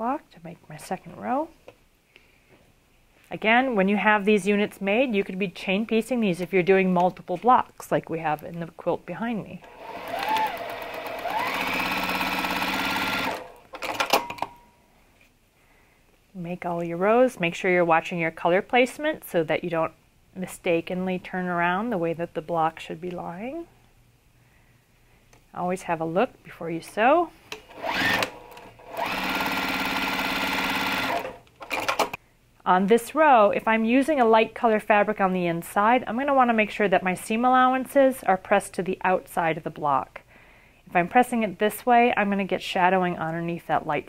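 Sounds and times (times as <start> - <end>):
sewing machine stitching: 9.6 - 14.4, 27.6 - 32.2.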